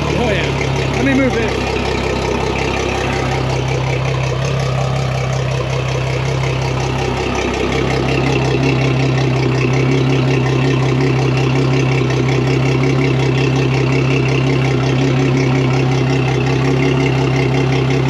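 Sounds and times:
outboard motor idling: 0.0 - 18.0.

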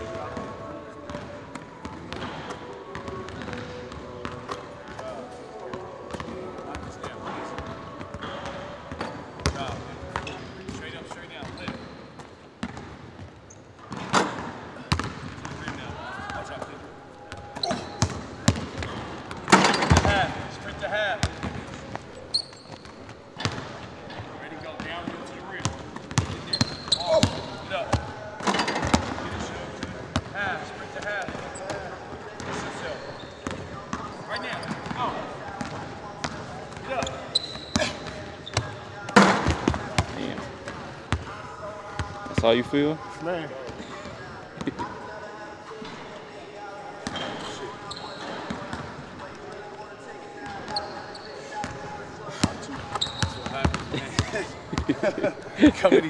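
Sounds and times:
shoe squeaks: 8.2 - 14.4, 17.3 - 29.8, 31.1 - 40.4, 47.0 - 48.8, 49.7 - 54.4
basketball bouncing on hardwood: 14.9 - 15.5.

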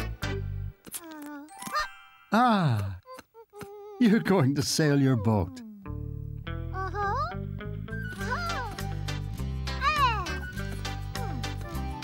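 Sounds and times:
cartoon music with plucked beat: 5.9 - 12.0
squeaky voice-like cartoon sound: 6.8 - 7.4.

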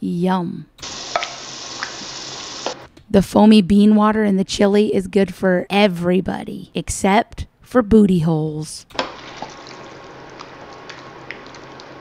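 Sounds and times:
spoon stirring thick chili: 9.0 - 12.0.

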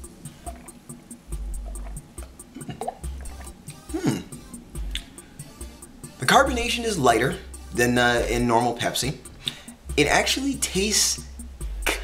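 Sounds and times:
background music with ticking beat: 0.0 - 12.0
person sipping and swallowing: 0.2 - 5.1
person murmuring hmm: 3.8 - 4.4.

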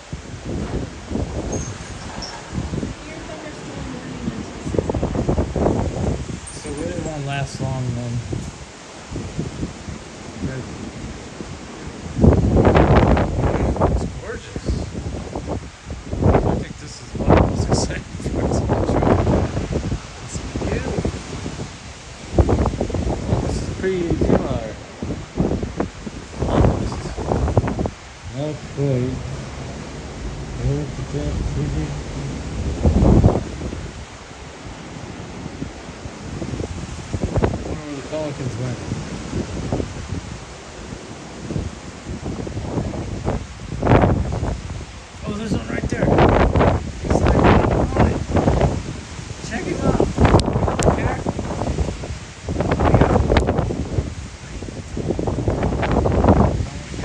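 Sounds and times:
wind gust buffeting microphone: 0.0 - 57.0.

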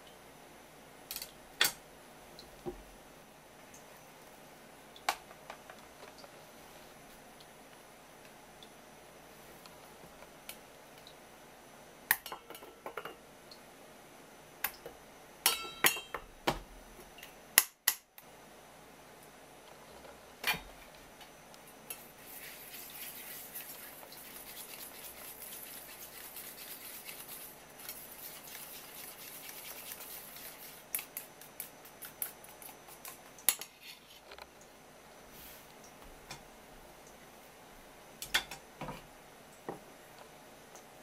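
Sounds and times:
whisk beating in a bowl: 21.9 - 33.3.

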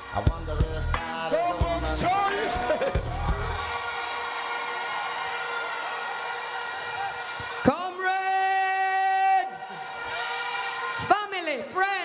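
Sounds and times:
low music beat: 0.0 - 3.8.

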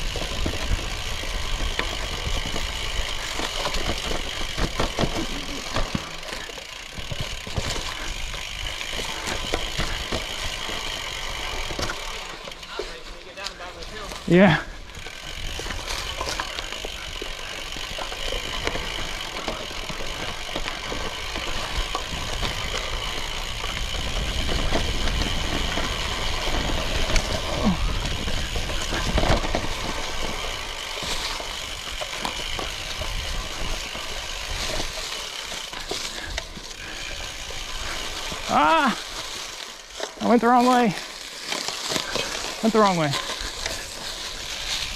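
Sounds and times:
bike tyre and drivetrain noise: 0.0 - 44.9
wind rumbling on microphone: 21.7 - 30.3.

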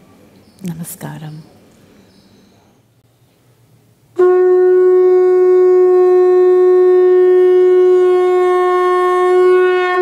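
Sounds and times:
conch shell blown: 4.1 - 10.0.

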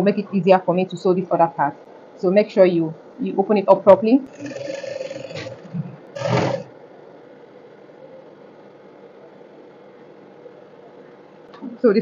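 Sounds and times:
faint steady hum: 0.0 - 12.0
sewing machine running: 6.2 - 6.7.

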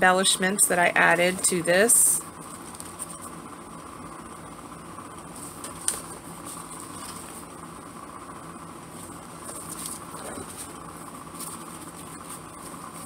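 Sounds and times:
paper envelopes rustling: 5.3 - 7.5, 8.9 - 13.0.

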